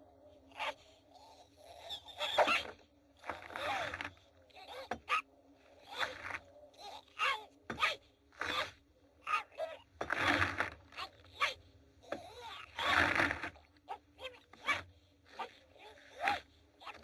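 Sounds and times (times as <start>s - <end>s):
pitched vocal squeaks: 0.5s - 17.0s.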